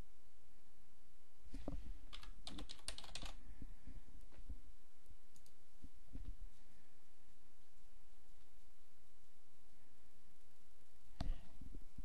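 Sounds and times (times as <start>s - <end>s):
keyboard typing: 2.1s - 3.4s.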